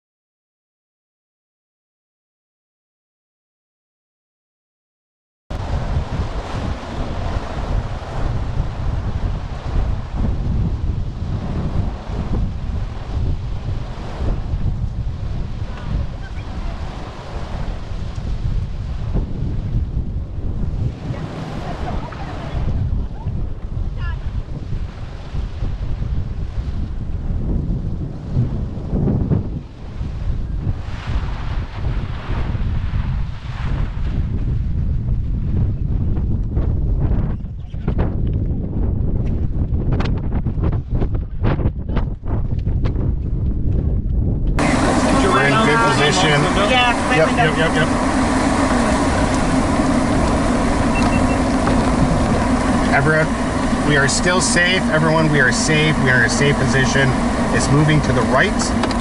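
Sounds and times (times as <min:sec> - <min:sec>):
wind buffeting microphone: 0:05.5 - 0:59.0.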